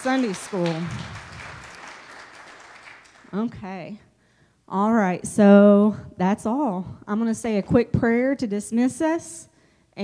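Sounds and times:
congregation applauding: 0.0s - 3.4s.

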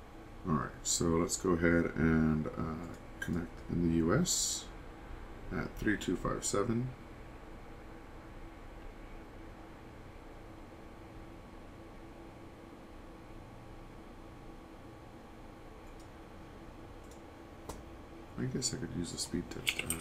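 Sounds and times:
room tone hiss and hum: 0.0s - 20.0s.

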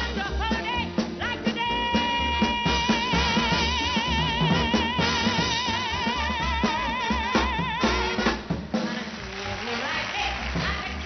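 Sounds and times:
live band playing: 0.0s - 11.0s.

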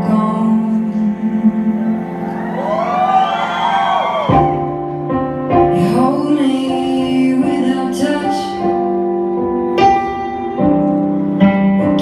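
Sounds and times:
person singing slow song: 0.0s - 3.6s, 5.6s - 12.0s.

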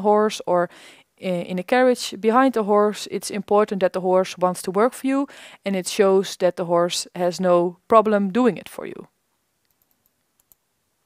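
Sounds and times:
computer mouse clicks: 9.6s - 10.6s.

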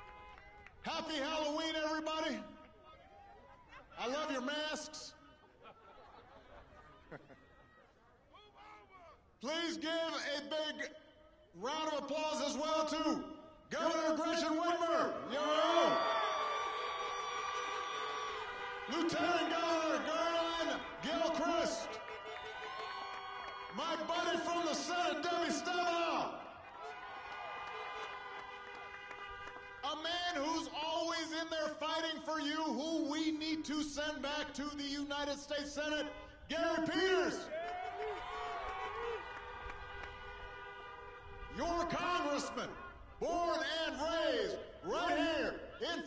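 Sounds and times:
car horns honking: 17.0s - 26.3s, 27.6s - 30.5s, 39.2s - 45.3s.

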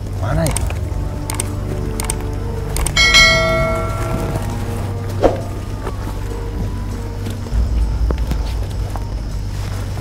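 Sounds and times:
low steady drone: 0.0s - 10.0s
bell-like tone ringing: 3.0s - 4.8s.

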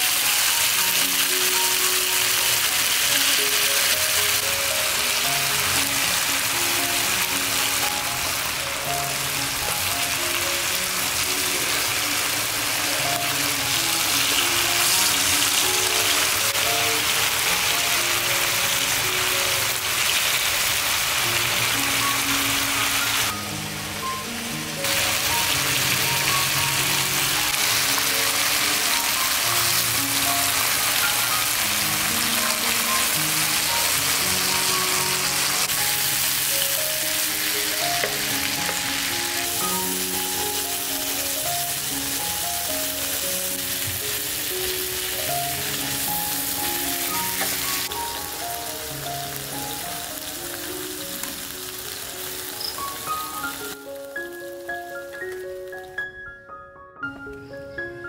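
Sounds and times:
meat sizzling in a pan: 0.0s - 55.7s
background music: 0.0s - 58.0s.

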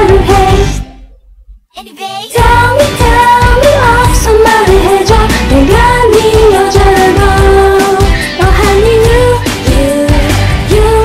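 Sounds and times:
woman singing: 0.0s - 0.8s, 2.3s - 11.0s
pop backing track: 0.0s - 1.0s, 2.0s - 11.0s.

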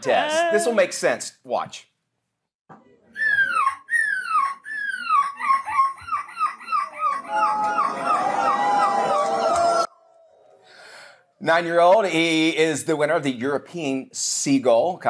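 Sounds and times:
boy imitating seagull screech: 3.2s - 5.5s
crowd noise: 6.5s - 10.6s.

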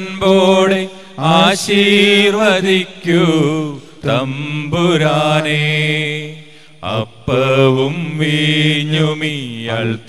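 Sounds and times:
priest chanting prayer: 0.0s - 10.0s.

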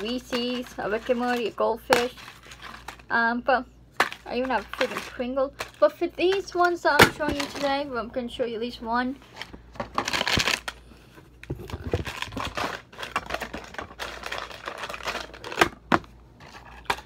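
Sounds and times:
cardboard and book rustling: 0.0s - 3.1s, 4.0s - 7.8s, 9.1s - 17.0s.

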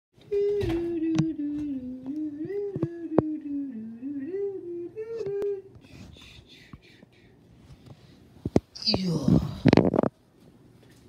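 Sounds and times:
person humming a tune: 0.2s - 7.3s.

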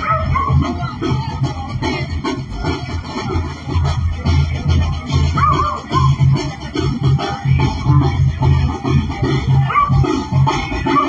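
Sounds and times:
brass band music: 0.0s - 11.0s
pulsing bass beat: 0.0s - 11.0s.

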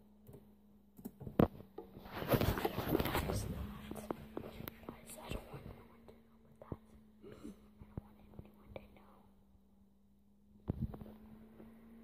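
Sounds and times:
faint low hum: 0.0s - 12.0s
person whispering: 2.6s - 9.4s.

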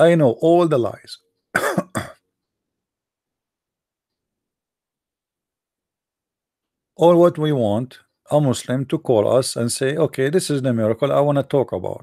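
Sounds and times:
man coughing: 1.6s - 2.2s.

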